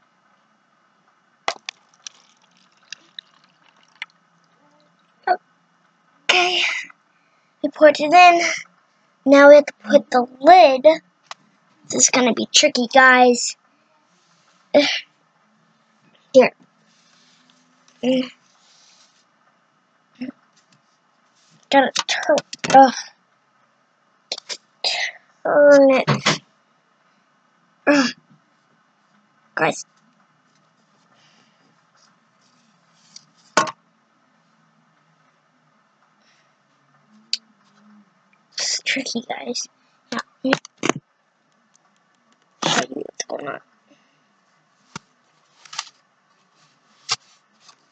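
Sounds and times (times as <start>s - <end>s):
water trickling into a cup: 1.5s - 5.3s.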